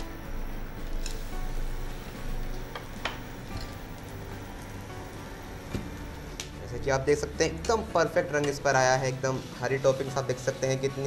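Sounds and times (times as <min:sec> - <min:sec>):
low hum: 0:00.0 - 0:07.7
faint background music: 0:00.0 - 0:11.0.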